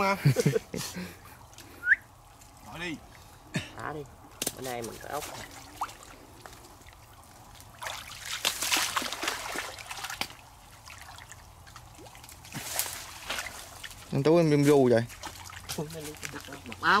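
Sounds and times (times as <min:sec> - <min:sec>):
water sloshing and trickling: 0:00.0 - 0:17.0
splashing water: 0:01.0 - 0:17.0.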